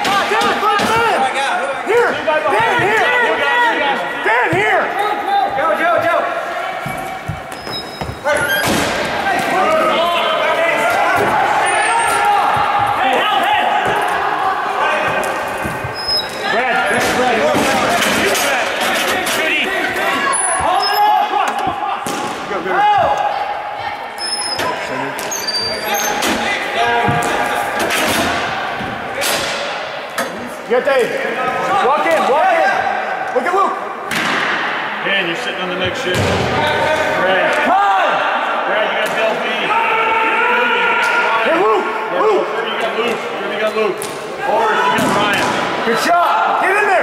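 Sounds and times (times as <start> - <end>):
players shouting in echoing rink: 0.0 - 47.0.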